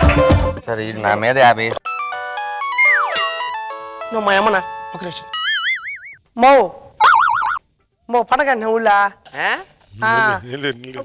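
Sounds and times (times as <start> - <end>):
electronic chime tune: 2.8 - 3.6.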